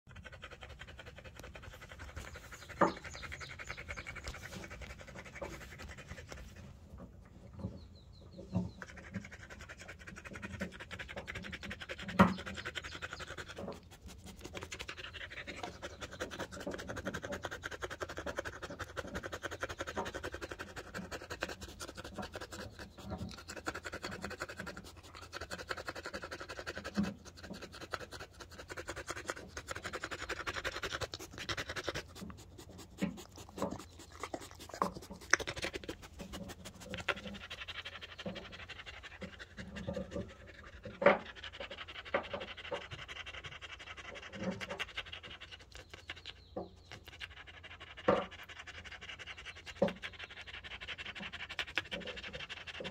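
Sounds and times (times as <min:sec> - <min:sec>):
dog panting: 0:00.1 - 0:52.9
scratchy rubbing noises: 0:08.7 - 0:41.4.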